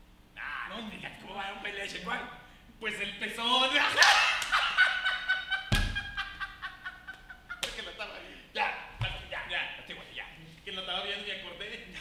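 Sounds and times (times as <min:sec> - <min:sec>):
people laughing hard: 0:03.8 - 0:07.9
thump: 0:05.7 - 0:06.1.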